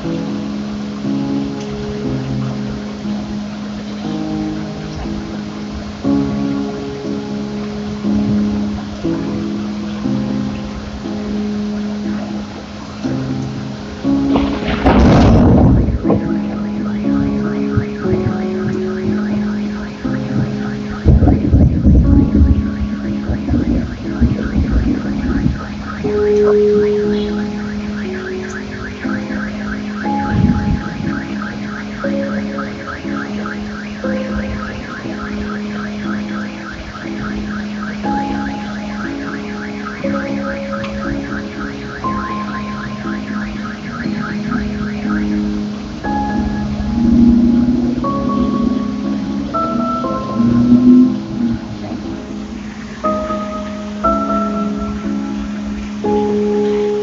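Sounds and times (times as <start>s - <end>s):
rain hissing: 0.0s - 57.0s
relaxation music with drone: 0.0s - 57.0s
thunder rolling: 14.1s - 54.0s
fast pulsing high tone: 14.3s - 55.3s.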